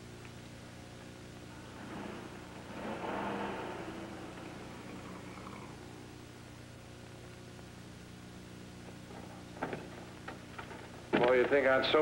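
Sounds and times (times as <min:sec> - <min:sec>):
rough car engine pulling away: 0:01.6 - 0:06.2.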